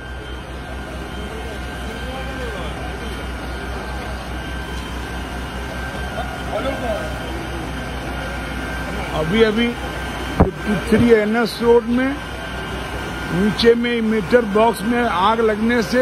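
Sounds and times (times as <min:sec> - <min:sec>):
faint voices talking: 0:00.0 - 0:16.0
vehicle engine idling: 0:00.0 - 0:16.0.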